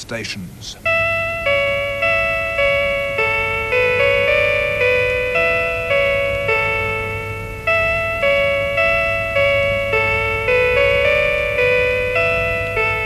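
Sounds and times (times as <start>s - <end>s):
slow chiming melody: 0.7s - 13.0s.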